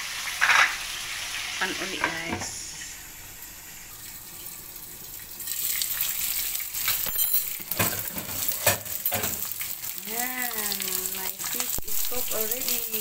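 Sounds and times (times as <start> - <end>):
fish sizzling in hot oil: 0.0 - 13.0
glass lid clink: 7.0 - 9.4.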